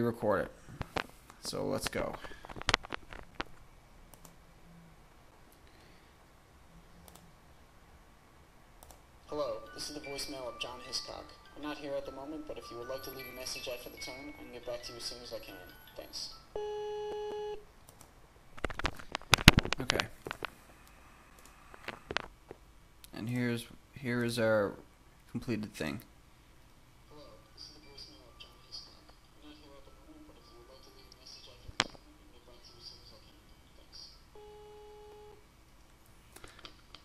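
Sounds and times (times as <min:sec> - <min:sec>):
sharp clicks: 0:02.7 - 0:04.4, 0:08.8 - 0:09.0
soft clicks: 0:03.4 - 0:04.4, 0:07.0 - 0:07.3, 0:08.8 - 0:09.0, 0:17.1 - 0:18.1
electronic beep tone: 0:16.6 - 0:17.6.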